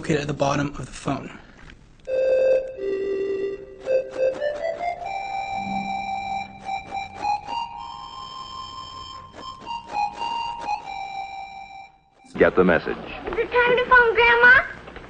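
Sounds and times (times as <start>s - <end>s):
flute-like ocarina melody: 2.1s - 12.2s.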